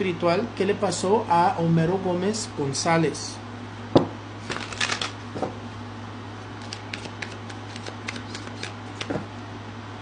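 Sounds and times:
cards being shuffled: 0:04.4 - 0:05.2, 0:06.6 - 0:09.3.

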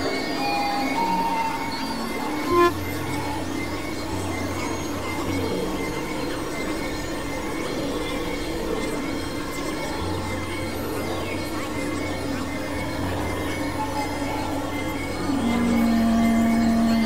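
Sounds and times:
noisy synthesizer drone: 0:15.0 - 0:17.0.

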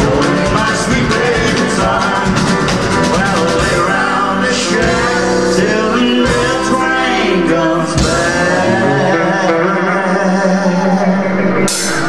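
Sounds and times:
country band playing live: 0:00.0 - 0:12.0
man singing: 0:00.0 - 0:12.0.

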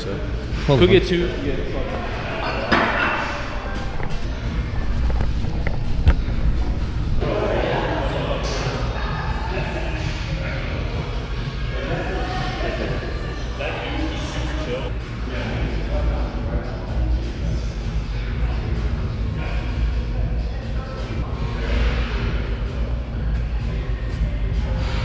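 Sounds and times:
background music: 0:00.0 - 0:25.0
indistinct voices: 0:00.0 - 0:25.0.

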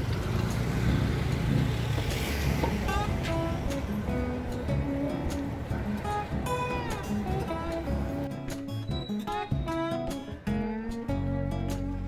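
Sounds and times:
car engine rumbling: 0:00.0 - 0:08.6
street traffic: 0:00.0 - 0:12.0.

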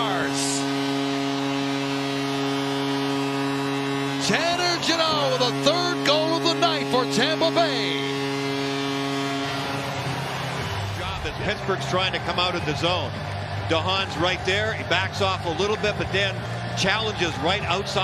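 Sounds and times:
crowd cheering: 0:00.0 - 0:18.0
goal horn blast: 0:00.0 - 0:18.0.

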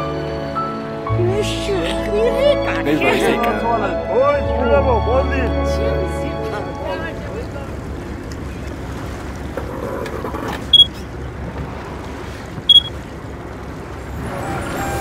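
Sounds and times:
boat engine running: 0:00.0 - 0:15.0
water noise: 0:00.0 - 0:15.0
high-pitched beeps: 0:12.7 - 0:12.9.

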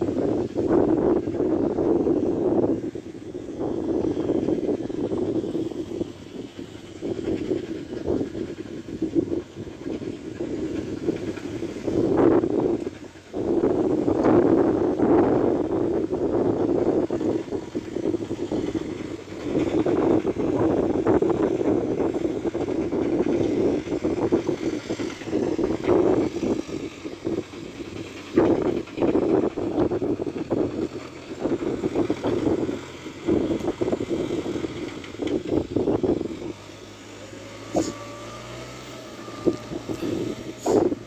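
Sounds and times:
distant tractor diesel engine: 0:00.0 - 0:41.0
wind buffeting microphone: 0:00.0 - 0:41.0.

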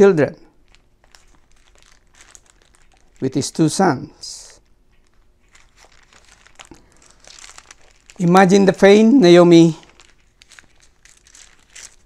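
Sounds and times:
faint rustling: 0:00.6 - 0:12.0.

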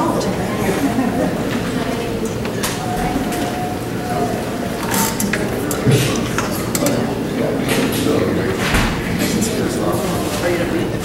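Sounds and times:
low background talk: 0:00.0 - 0:11.0.

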